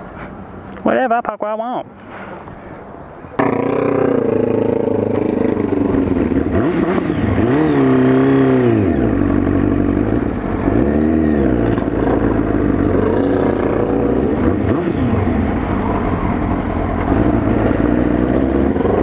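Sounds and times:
motorcycle engine revving: 0:03.4 - 0:19.0.

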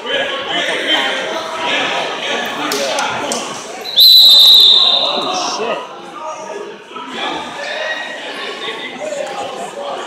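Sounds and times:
crowd chatter in a large hall: 0:00.0 - 0:10.0
referee's whistle blast: 0:03.8 - 0:05.4.

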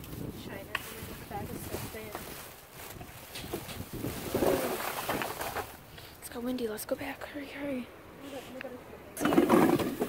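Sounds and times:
plastic bags rustling: 0:00.0 - 0:05.9.

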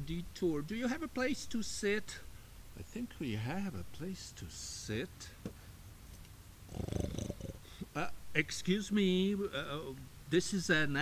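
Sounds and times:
man growling: 0:06.7 - 0:07.7.

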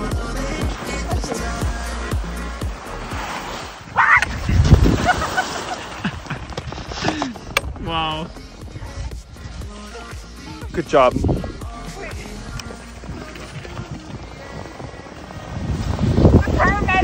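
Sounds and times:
background music with singing: 0:00.0 - 0:03.6, 0:07.8 - 0:15.4
skis scraping on snow: 0:12.3 - 0:16.9.

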